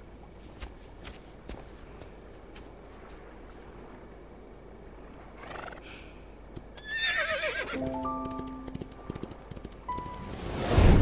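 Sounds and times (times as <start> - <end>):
soft sustained music: 7.8 - 9.1
sharp clicks: 7.8 - 10.6
whoosh: 10.2 - 11.0.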